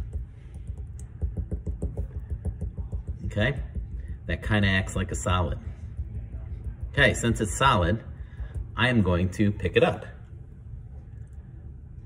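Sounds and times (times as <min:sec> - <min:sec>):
fingertips tapping slime: 0:00.0 - 0:07.8.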